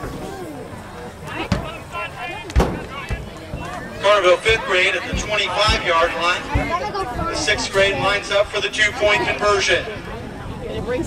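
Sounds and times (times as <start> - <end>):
people talking indistinctly: 0.0 - 11.0
sharp thumps: 1.3 - 8.1.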